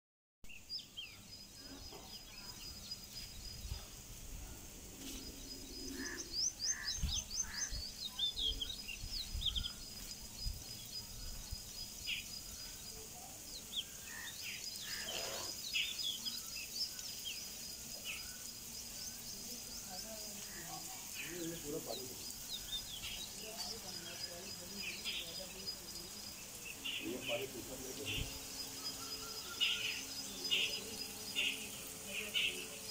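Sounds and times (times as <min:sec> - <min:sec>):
birds chirping: 0:00.4 - 0:32.9.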